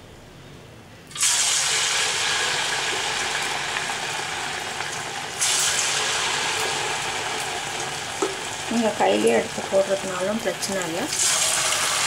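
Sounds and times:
batter sizzling in hot oil: 0:01.1 - 0:12.0.

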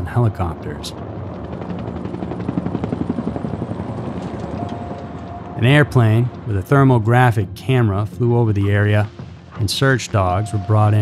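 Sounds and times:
helicopter rotor blades beating: 0:00.0 - 0:11.0.

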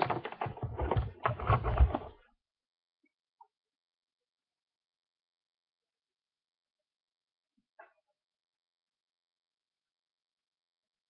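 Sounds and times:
objects clicking and knocking: 0:00.0 - 0:02.2.

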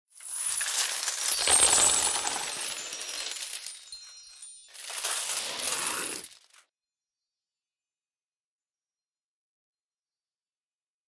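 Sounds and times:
metal coins pouring and clinking: 0:00.1 - 0:06.6.

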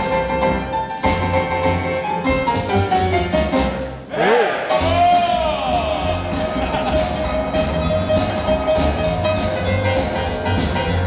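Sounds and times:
boogie-woogie band playing: 0:00.0 - 0:11.0.

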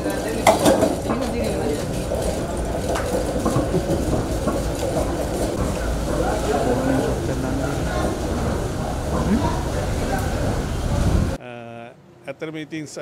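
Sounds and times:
trolley rolling with low rumble: 0:00.0 - 0:11.4
people's voices: 0:00.0 - 0:13.0.

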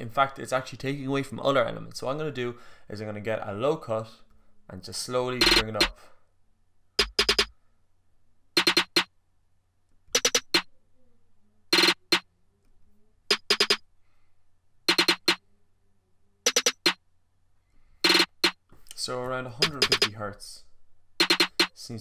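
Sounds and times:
drum machine snare hits: 0:05.4 - 0:06.0, 0:07.0 - 0:07.5, 0:08.6 - 0:09.1, 0:10.2 - 0:10.6, 0:11.8 - 0:12.2, 0:13.3 - 0:13.8, 0:14.9 - 0:15.4, 0:16.5 - 0:17.0, 0:18.1 - 0:18.6, 0:19.6 - 0:20.1, 0:21.2 - 0:21.8.

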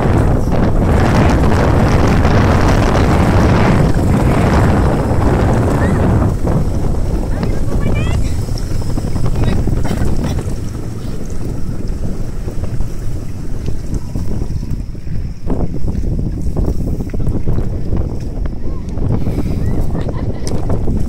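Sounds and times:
boat moving over water: 0:00.0 - 0:21.0
wind buffeting microphone: 0:00.0 - 0:21.0.

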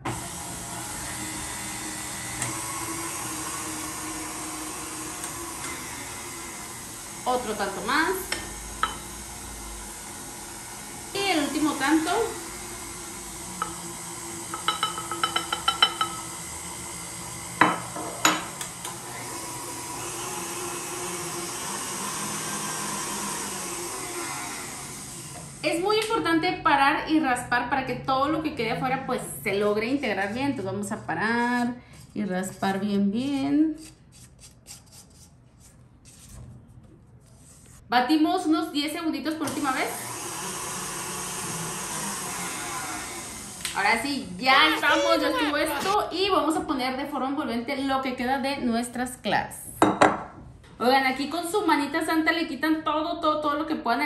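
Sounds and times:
stand mixer humming: 0:00.0 - 0:25.8, 0:39.4 - 0:46.0.

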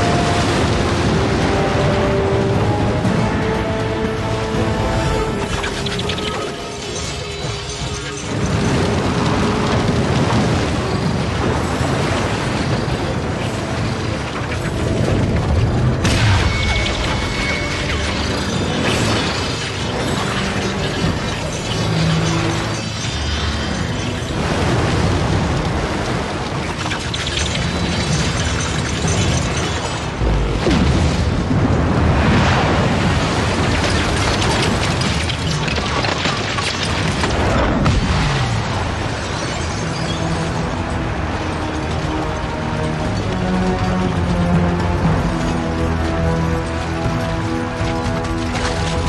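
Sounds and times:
rumble of surging water: 0:00.0 - 0:49.0
dense rattling clatter: 0:05.4 - 0:30.6, 0:33.3 - 0:49.0.

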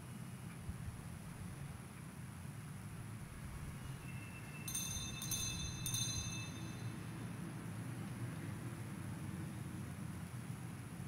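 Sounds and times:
low steady hum: 0:02.4 - 0:08.0
altar bells ringing: 0:04.3 - 0:07.1.

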